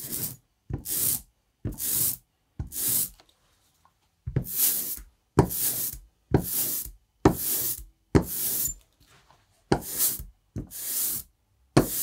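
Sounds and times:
ink roller rolling through ink: 0.0s - 3.2s, 4.3s - 12.0s.

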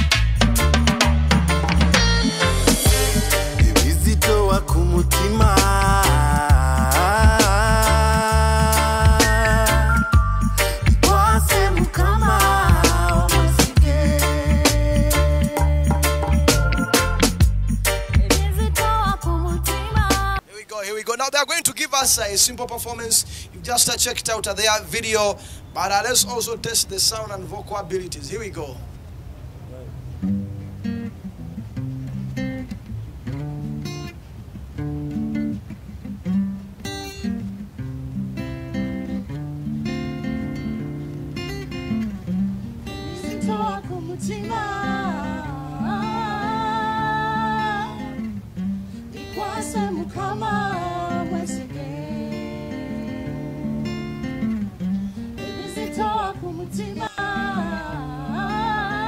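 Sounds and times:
acoustic guitar chords: 0.0s - 20.4s, 30.1s - 59.0s
man and woman singing: 2.9s - 10.0s, 10.8s - 16.7s, 18.1s - 20.6s, 43.1s - 48.3s, 49.2s - 54.3s, 55.4s - 59.0s.

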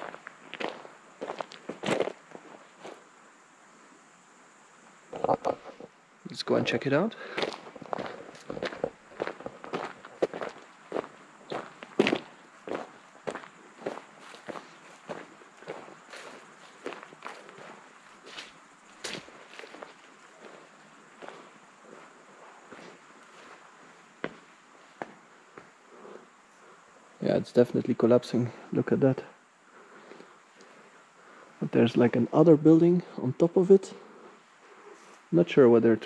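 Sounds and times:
footsteps on gravel and grass: 0.0s - 3.1s, 7.2s - 25.8s.

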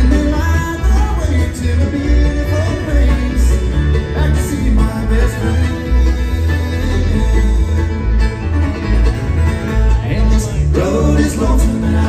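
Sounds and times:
bluegrass band playing: 0.0s - 12.0s.

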